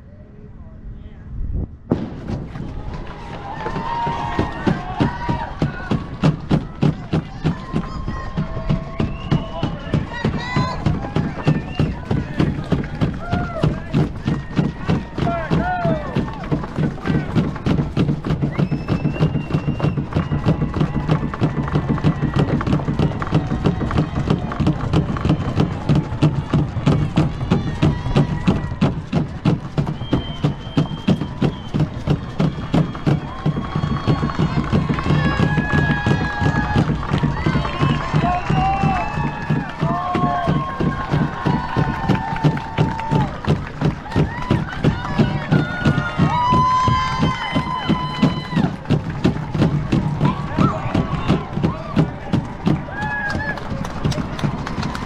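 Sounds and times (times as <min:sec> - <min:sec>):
running footsteps on pavement: 0:02.3 - 0:55.0
spectators cheering and shouting: 0:02.3 - 0:55.0.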